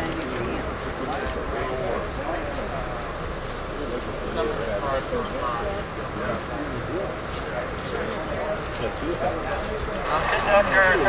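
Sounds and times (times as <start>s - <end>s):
chatter of passengers: 0.0s - 11.0s
train car running rumble: 0.0s - 11.0s.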